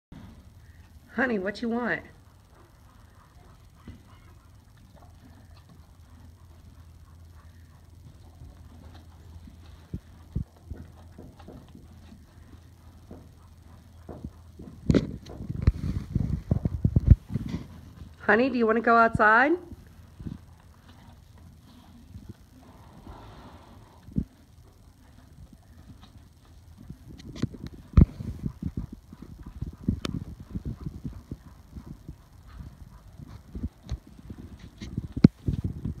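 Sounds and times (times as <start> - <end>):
low steady hum: 0.1 - 36.0
faint scattered sounds: 0.2 - 18.4, 19.6 - 36.0
horse mouth sounds: 2.4 - 18.2, 19.8 - 36.0.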